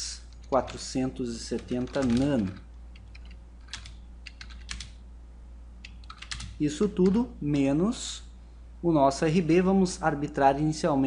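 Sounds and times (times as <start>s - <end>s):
computer keyboard typing: 1.4s - 5.0s, 5.8s - 7.2s.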